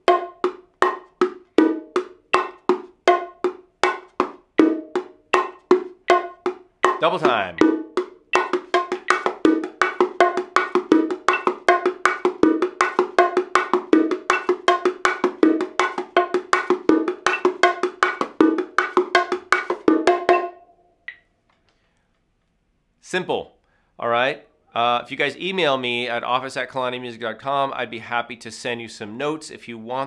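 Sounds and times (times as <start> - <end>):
bongos played by hand: 0.0 - 20.7.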